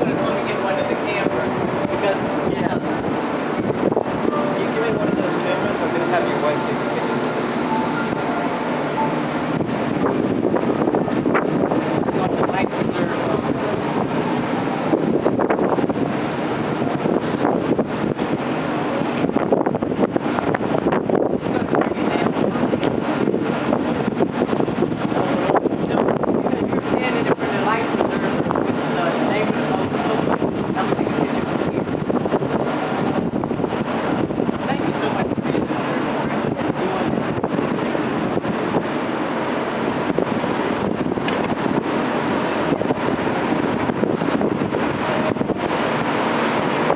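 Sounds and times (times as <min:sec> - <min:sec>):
indistinct background voices: 0:00.0 - 0:15.0
boat engine running: 0:00.0 - 0:46.9
wind on microphone: 0:00.0 - 0:46.9.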